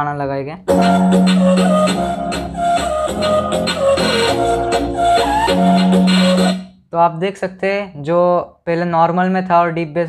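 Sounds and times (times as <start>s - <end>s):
song on bass-heavy speaker: 0.7s - 6.7s.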